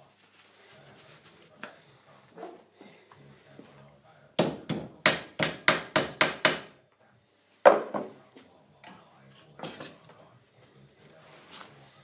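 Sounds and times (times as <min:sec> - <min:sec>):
hammer striking metal: 0:04.4 - 0:06.7.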